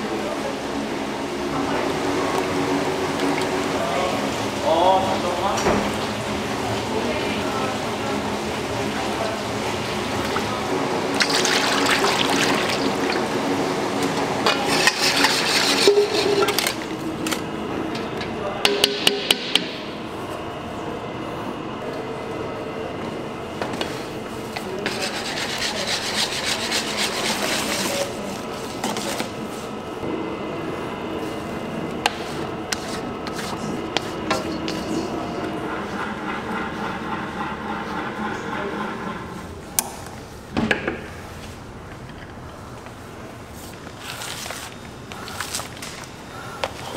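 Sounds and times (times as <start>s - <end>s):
cream pouring into steel bowl: 10.2s - 13.4s
background talk: 20.0s - 30.0s.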